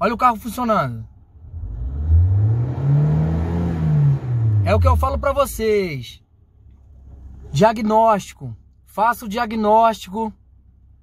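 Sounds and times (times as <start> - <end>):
car engine revving: 1.3 - 5.6.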